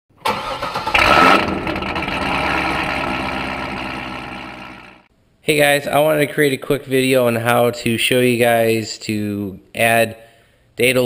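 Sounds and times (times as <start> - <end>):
car engine starting and idling: 0.1 - 5.1.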